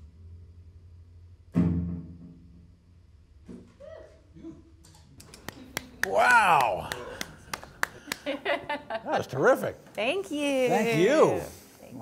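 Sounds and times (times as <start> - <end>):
hand claps: 5.2 - 8.4.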